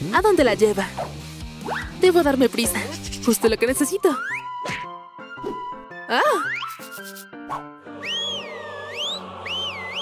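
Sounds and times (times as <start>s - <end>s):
background music: 0.0s - 10.0s
cartoon whistle sliding in pitch: 8.0s - 10.0s.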